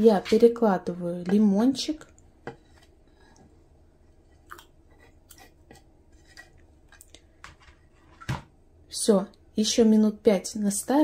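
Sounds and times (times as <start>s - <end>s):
soft scrapes on cutting board: 2.5s - 3.6s.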